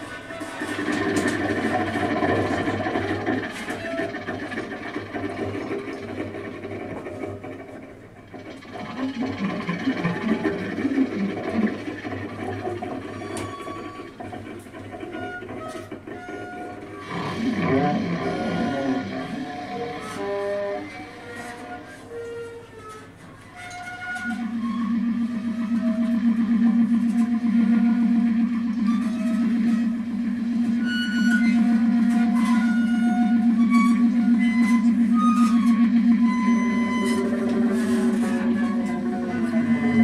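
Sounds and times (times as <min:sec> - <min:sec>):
bowed double bass: 0:00.4 - 0:22.4, 0:23.8 - 0:40.0
clarinet: 0:08.8 - 0:40.0.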